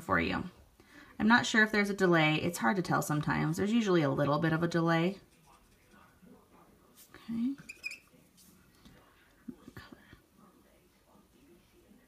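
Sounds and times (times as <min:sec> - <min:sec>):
pen squeaking on paper: 0:07.6 - 0:08.1.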